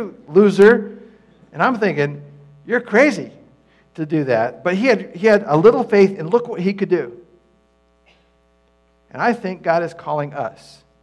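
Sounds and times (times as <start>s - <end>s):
voice: 0.0s - 0.9s, 1.6s - 3.4s, 4.0s - 7.2s, 9.2s - 10.8s
faint electrical hum: 0.0s - 11.0s.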